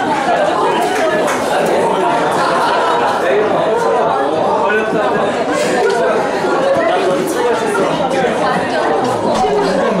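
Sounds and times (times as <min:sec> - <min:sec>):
hubbub of overlapping voices: 0:00.0 - 0:10.0.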